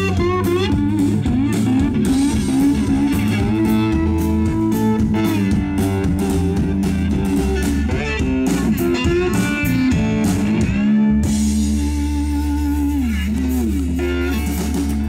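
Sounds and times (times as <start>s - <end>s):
drum kit steady beat: 0.0s - 15.0s
electric bass: 0.0s - 15.0s
slide guitar gliding notes: 0.0s - 15.0s.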